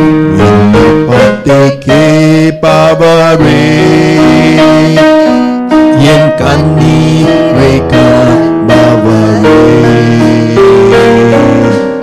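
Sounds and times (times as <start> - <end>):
electric keyboard chords: 0.0 - 12.0
voices singing worship song: 0.3 - 12.0.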